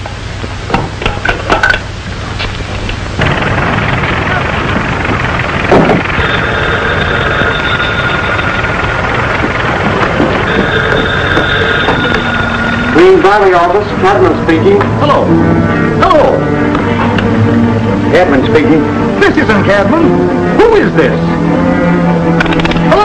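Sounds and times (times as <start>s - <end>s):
background rumble: 2.3s - 19.6s
telephone bell ringing: 6.1s - 13.5s.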